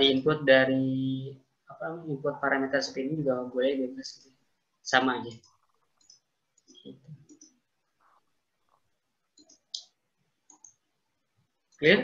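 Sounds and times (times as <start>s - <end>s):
computer mouse clicks: 5.3s - 10.9s.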